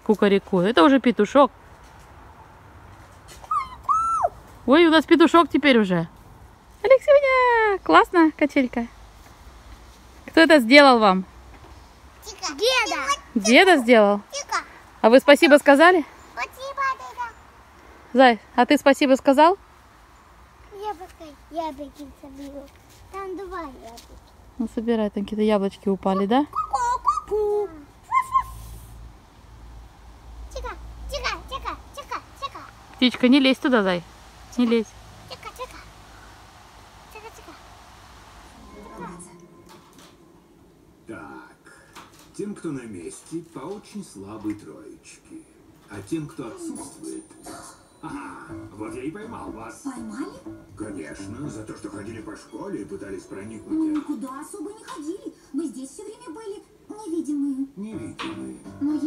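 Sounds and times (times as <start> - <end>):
child making cuckoo call: 3.4 - 4.4, 26.5 - 28.6
child imitating rooster crow: 3.5 - 4.4.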